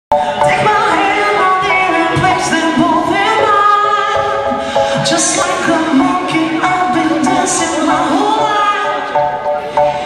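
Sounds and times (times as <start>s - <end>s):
woman singing pop song: 0.1s - 10.0s.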